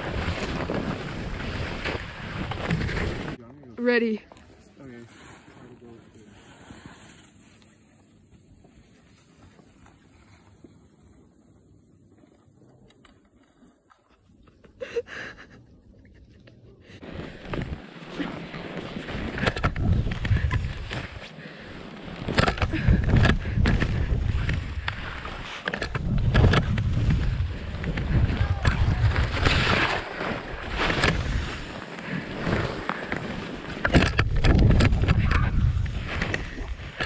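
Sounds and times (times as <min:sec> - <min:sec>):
skis hissing through snow: 0:04.8 - 0:11.4
wind rumble on microphone: 0:19.2 - 0:21.2, 0:22.2 - 0:31.8, 0:33.8 - 0:37.0.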